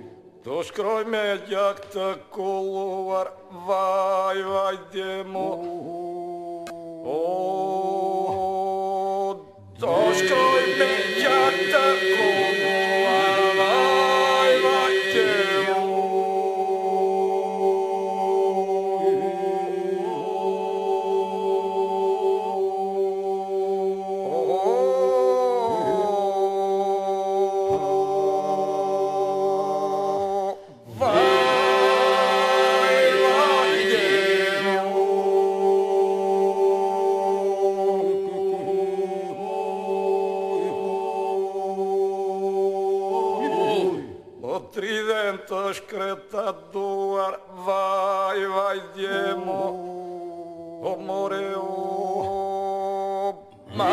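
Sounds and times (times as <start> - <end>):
male group singing over drone: 7.1 - 44.6, 45.5 - 50.0, 50.8 - 53.9.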